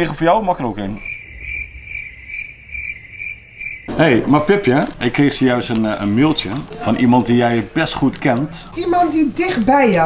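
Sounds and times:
cricket chirping: 0.0s - 4.6s.

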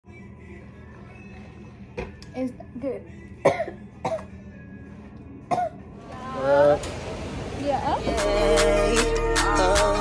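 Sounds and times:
woman coughing: 3.4s - 4.3s, 5.5s - 5.8s.

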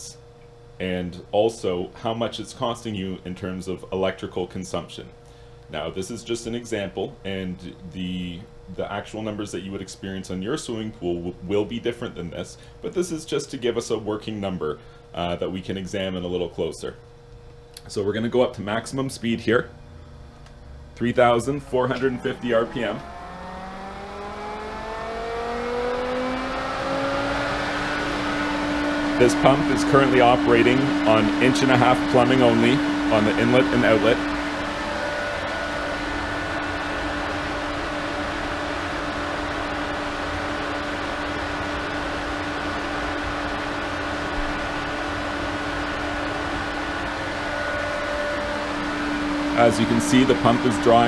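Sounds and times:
pool pump motor whine rising: 0.0s - 51.0s.

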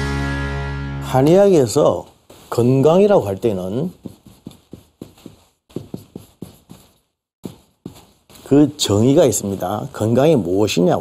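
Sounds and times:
chalk tapping on chalkboard: 3.6s - 8.5s.

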